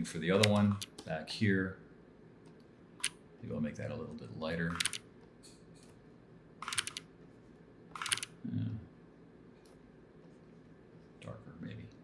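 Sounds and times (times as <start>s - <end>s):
keyboard keys clicking: 6.6s - 7.0s, 8.0s - 8.3s.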